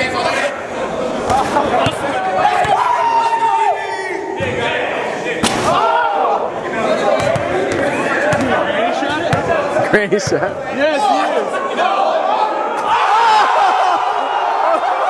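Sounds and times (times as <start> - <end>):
young men shouting: 1.9 - 4.4, 10.7 - 15.0
basketball hitting basket: 7.2 - 9.5.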